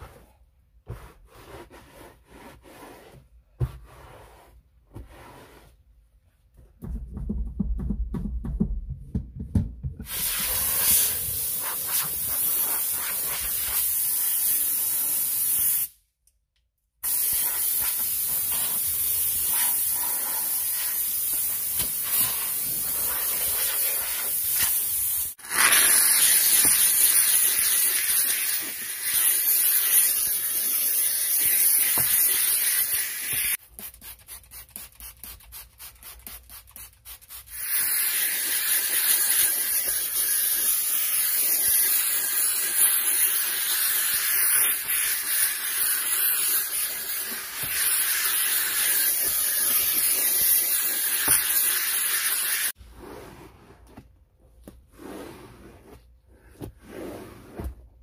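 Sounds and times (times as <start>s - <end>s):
steam nozzle hissing: 10.1s - 16.0s, 17.0s - 33.6s, 37.5s - 52.8s
towel rubbing: 54.8s - 58.0s.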